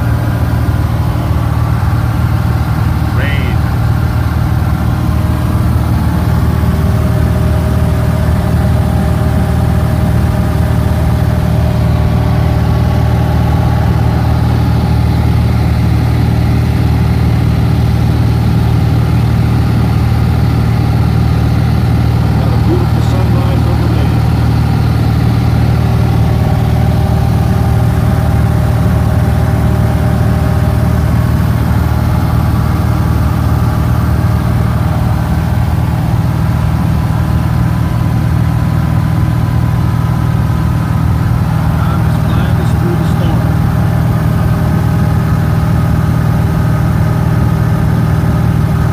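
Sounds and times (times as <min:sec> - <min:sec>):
small airplane engine drone: 0:00.0 - 0:48.9.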